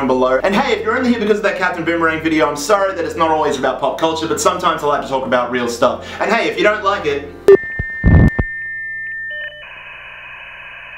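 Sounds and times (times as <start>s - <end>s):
high electronic beep: 7.5s - 9.8s
electronic tone over hiss: 7.5s - 10.9s.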